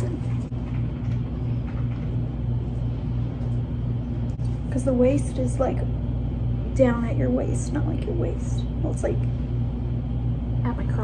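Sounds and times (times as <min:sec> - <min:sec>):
people talking: 0:00.0 - 0:00.5, 0:04.7 - 0:05.9, 0:06.7 - 0:09.4, 0:10.6 - 0:11.0
low pulsing mechanical hum: 0:00.0 - 0:11.0.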